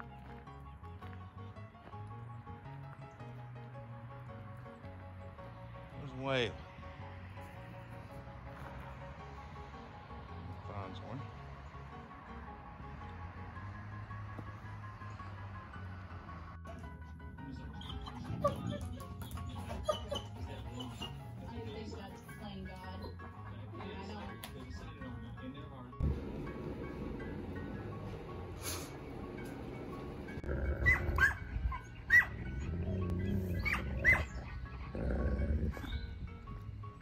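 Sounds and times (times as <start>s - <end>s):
background music: 0.0s - 37.0s
dogs vocalizing in play: 17.6s - 21.5s, 30.3s - 36.2s.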